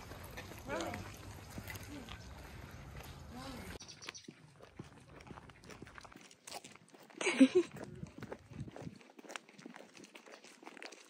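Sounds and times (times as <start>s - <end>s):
footsteps: 0.0s - 11.0s.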